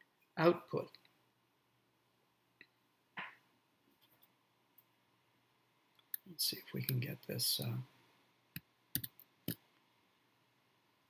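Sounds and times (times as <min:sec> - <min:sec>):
computer mouse clicks: 0:08.6 - 0:09.6.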